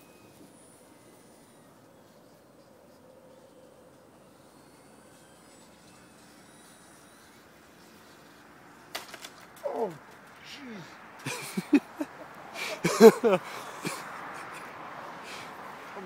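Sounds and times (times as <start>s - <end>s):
model plane motor whine: 0.0s - 9.4s.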